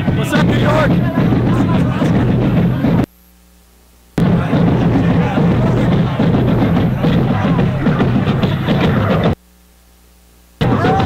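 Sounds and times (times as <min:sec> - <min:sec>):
music with drum beat: 0:00.0 - 0:03.1, 0:04.2 - 0:09.4, 0:10.6 - 0:11.0
voices: 0:00.0 - 0:03.1, 0:04.2 - 0:09.4, 0:10.6 - 0:11.0.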